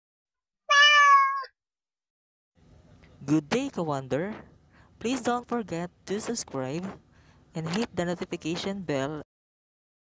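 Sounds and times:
cat meow: 0:00.7 - 0:01.5.

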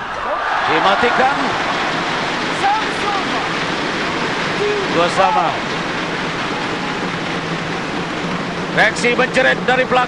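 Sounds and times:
arena crowd cheering: 0:00.0 - 0:08.1.

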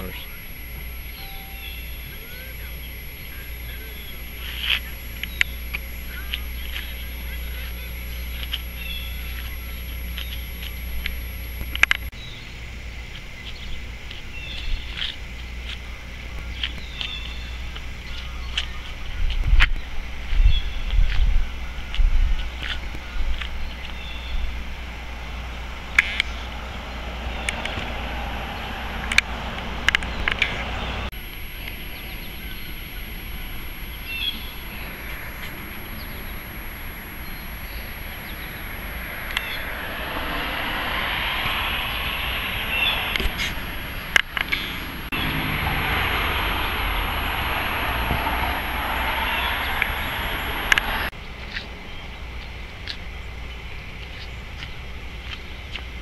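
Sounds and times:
sharp clicks: 0:00.0 - 0:12.1, 0:27.4 - 0:28.0, 0:29.0 - 0:45.2, 0:47.4 - 0:51.1
low wind rumble on microphone: 0:00.0 - 0:56.0.

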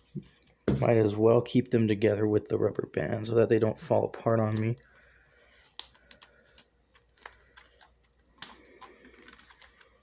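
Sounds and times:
trading cards clicking and rustling: 0:03.8 - 0:10.0.

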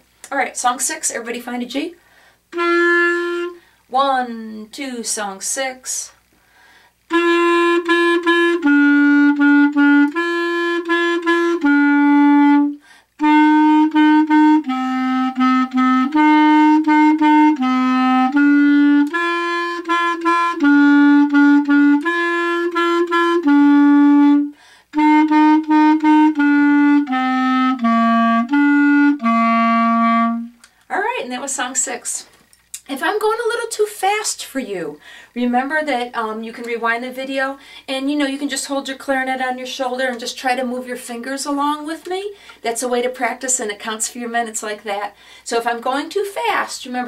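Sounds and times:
clarinet playing simple melody: 0:02.5 - 0:03.7, 0:07.1 - 0:30.7.

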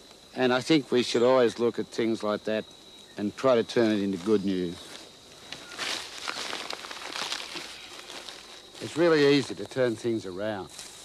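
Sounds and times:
newspaper rustling: 0:05.6 - 0:09.4.

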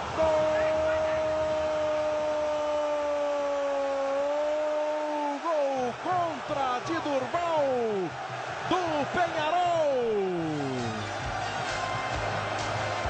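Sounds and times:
commentator shouting goal: 0:00.0 - 0:11.0.

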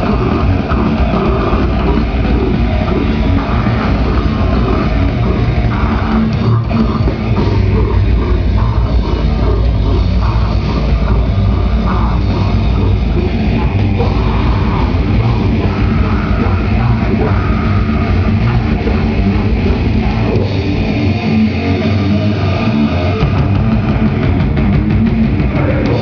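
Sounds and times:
live metal band playing: 0:00.0 - 0:26.0.

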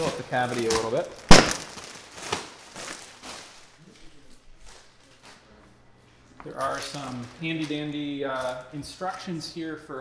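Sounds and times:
packing rustling: 0:00.0 - 0:03.7.

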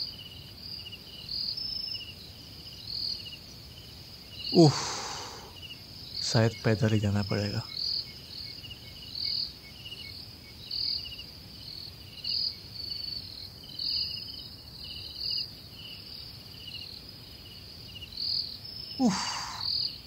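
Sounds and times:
crickets chirping: 0:00.0 - 0:20.0
pulsing insect trill: 0:01.2 - 0:20.0.

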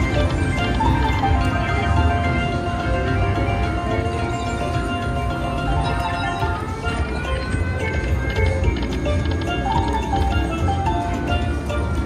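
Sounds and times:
slot machine bonus music: 0:00.0 - 0:12.0.

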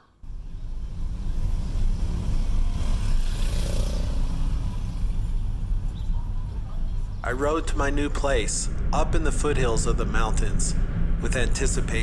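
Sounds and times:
car engine and road rumble: 0:00.2 - 0:12.0.

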